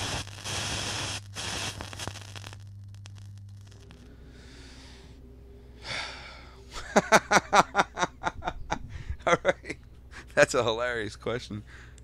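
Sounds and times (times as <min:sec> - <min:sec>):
static-like hiss: 0:00.0 - 0:05.1
steady low hum: 0:00.0 - 0:12.0.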